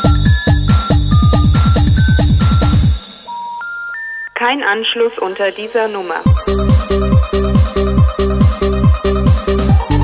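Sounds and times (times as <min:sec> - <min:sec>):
rising telephone tone beeps: 0:03.2 - 0:04.6
recorded voice announcement: 0:04.3 - 0:06.4.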